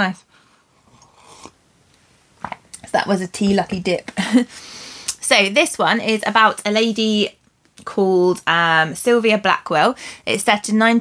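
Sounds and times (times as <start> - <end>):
woman speaking: 0.0 - 0.2, 2.8 - 4.5, 5.1 - 11.0
soft sip from a mug: 0.8 - 1.6.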